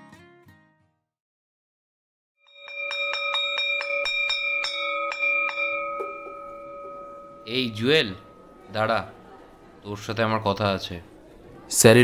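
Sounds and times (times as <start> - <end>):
metal bell struck rapidly: 2.5 - 9.2.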